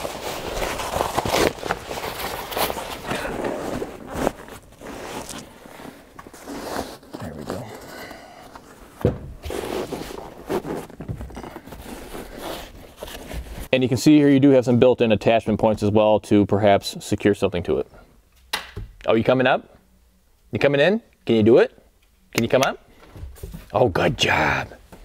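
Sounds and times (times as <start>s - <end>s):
nylon cover rustling and scraping: 0.0s - 13.7s.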